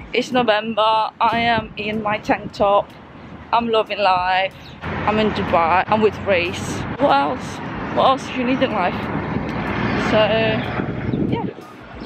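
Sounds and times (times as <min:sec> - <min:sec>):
passing road vehicle rumble: 0:00.0 - 0:12.0.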